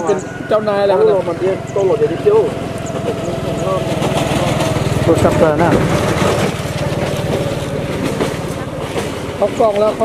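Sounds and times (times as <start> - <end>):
faint voices: 0.0 - 10.0
low engine drone: 0.0 - 10.0.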